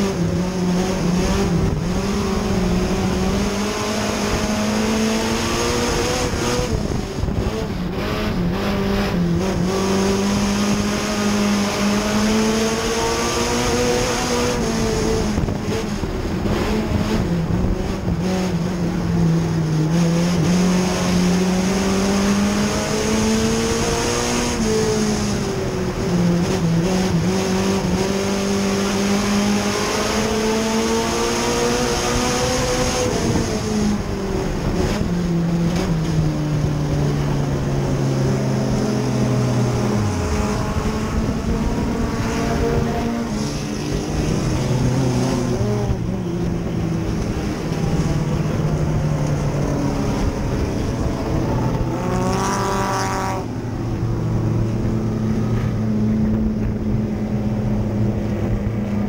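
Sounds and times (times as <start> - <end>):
race car engine running hard: 0.0 - 59.0
road and wind noise: 0.0 - 59.0.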